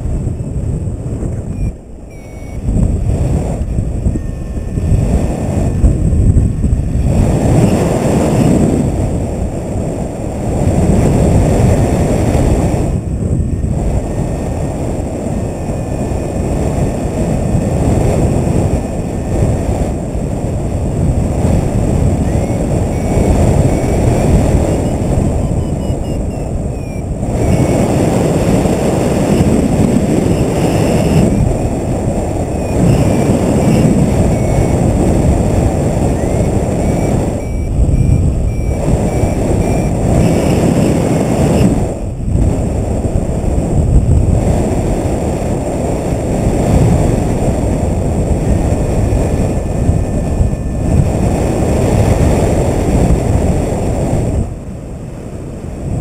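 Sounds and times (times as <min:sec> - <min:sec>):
wind noise on microphone: 0:00.0 - 0:56.0.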